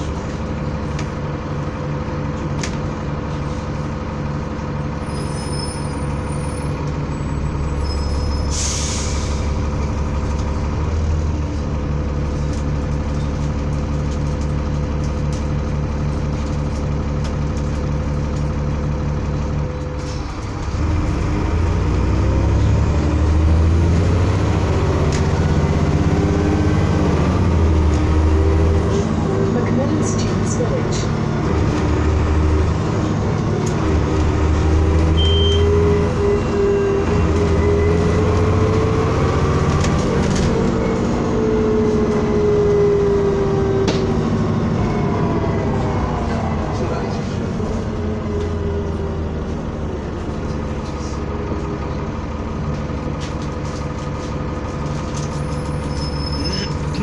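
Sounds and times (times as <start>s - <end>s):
bus diesel engine: 0.0s - 57.0s.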